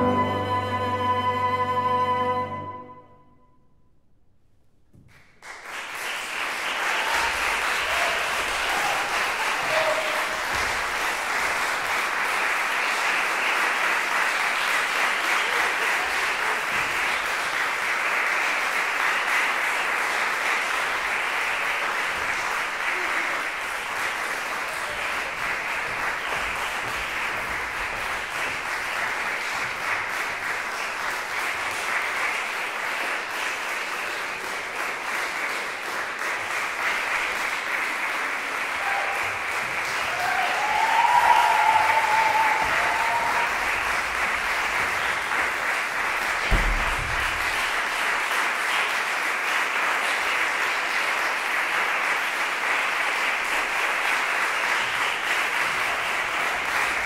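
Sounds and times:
audience applauding: 5.1s - 57.0s.

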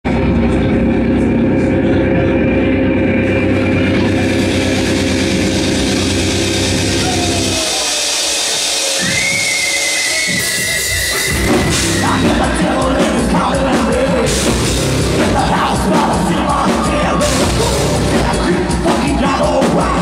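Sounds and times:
rock band droning chord: 0.1s - 9.0s, 11.1s - 20.0s
falling tone: 0.1s - 18.8s
high steady whine: 0.1s - 19.2s.

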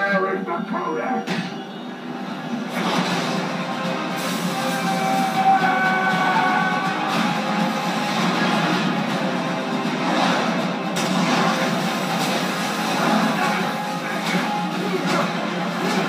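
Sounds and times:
film score music through tv speaker: 0.0s - 16.0s
sharp hit: 9.9s - 16.0s.

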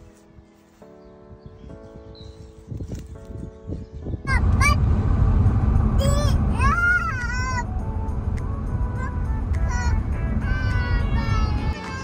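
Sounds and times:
car cabin rumble: 4.2s - 11.8s.

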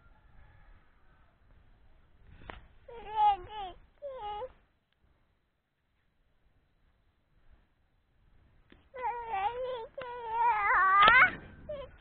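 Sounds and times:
toddler whining: 2.9s - 4.6s, 9.0s - 12.0s.

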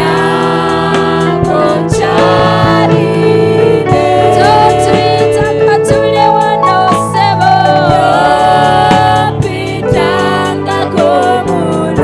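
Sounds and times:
woman singing gospel song: 0.0s - 12.0s.

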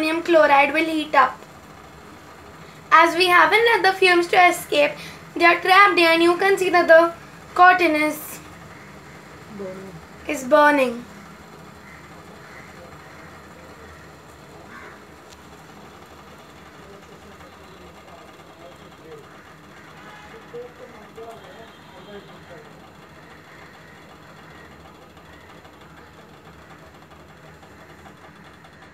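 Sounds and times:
gas stove burner hissing: 0.0s - 28.9s
faint indistinct voices: 2.9s - 28.9s.

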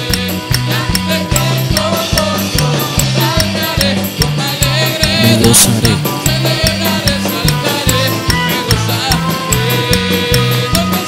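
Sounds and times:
drum kit beat: 0.0s - 11.0s
electric bass: 0.0s - 11.0s
keyboard: 0.0s - 11.0s.

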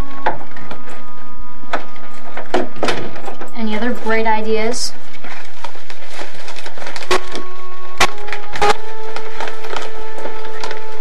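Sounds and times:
steady held tones: 0.0s - 11.0s
paper crackling: 5.0s - 11.0s.

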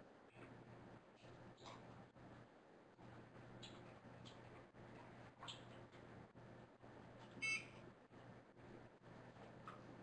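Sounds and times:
low steady hum: 0.0s - 10.0s
short electronic beep: 7.4s - 7.7s.

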